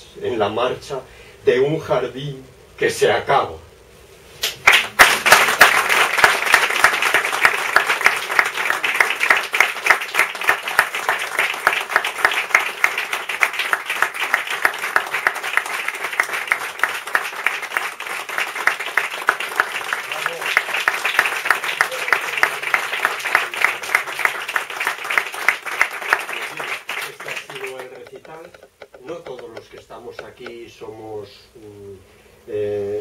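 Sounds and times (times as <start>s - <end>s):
audience applauding: 4.6s - 30.6s.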